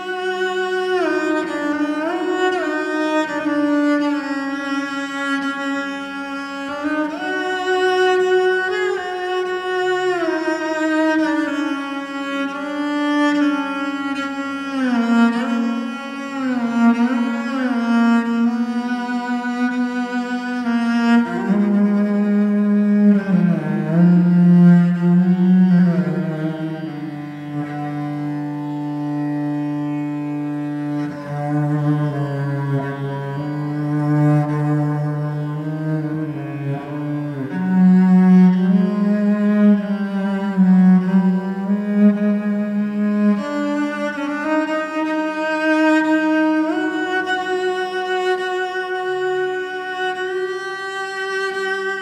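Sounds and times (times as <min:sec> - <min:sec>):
bowed cello with vibrato: 0:00.0 - 0:52.0.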